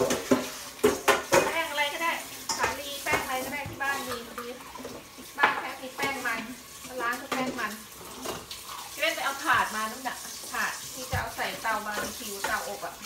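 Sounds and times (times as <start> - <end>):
hands scrubbing wet meat: 6.2 - 13.0.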